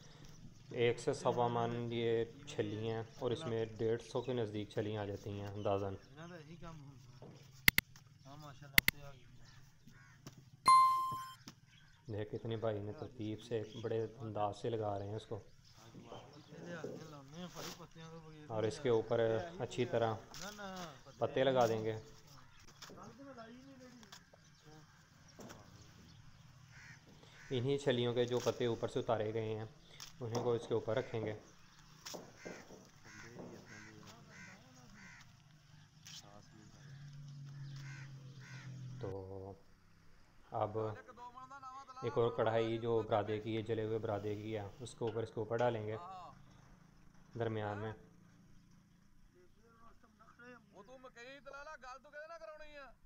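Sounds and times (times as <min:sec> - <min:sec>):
bird calling: 0:10.7 - 0:11.4
electronic notification chime: 0:10.7 - 0:11.4.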